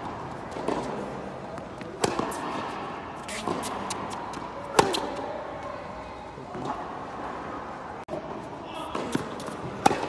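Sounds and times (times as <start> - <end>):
tennis ball bouncing: 0.0 - 5.3, 8.9 - 10.0
racket hitting tennis ball: 0.0 - 5.4, 8.9 - 10.0.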